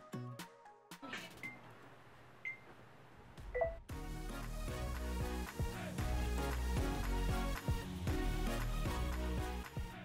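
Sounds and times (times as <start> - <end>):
background music: 0.0 - 1.6, 3.3 - 10.0
music with a steady beat: 3.9 - 10.0.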